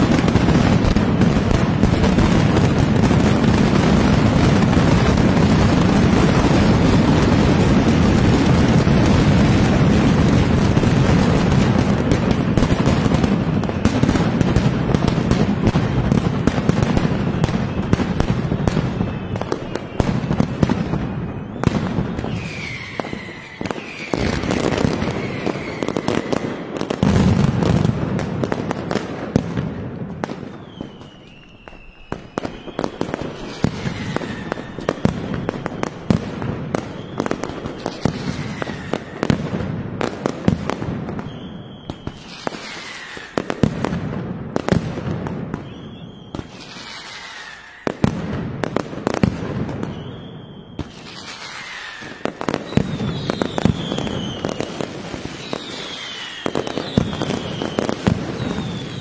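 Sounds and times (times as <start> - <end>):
firecrackers banging: 0.0 - 59.0
whistling rockets falling in pitch: 0.0 - 59.0.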